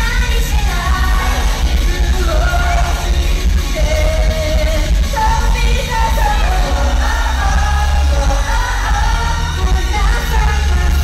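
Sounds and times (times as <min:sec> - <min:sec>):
pop backing track with bass: 0:00.0 - 0:11.0
women singing live: 0:00.0 - 0:11.0.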